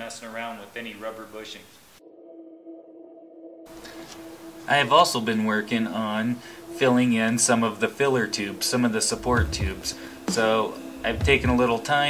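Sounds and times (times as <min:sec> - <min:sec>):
low room hiss: 0:00.0 - 0:02.0, 0:03.7 - 0:12.0
held pure tone note: 0:02.0 - 0:12.0.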